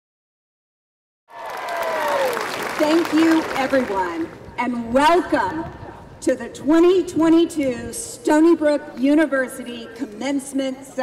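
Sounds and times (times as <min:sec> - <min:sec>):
faint cheer: 0:01.3 - 0:02.8
large crowd applauding: 0:01.3 - 0:04.4.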